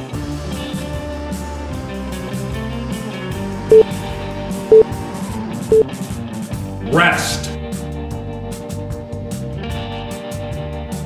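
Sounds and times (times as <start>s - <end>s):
rock music with electric guitar: 7.6s - 11.0s.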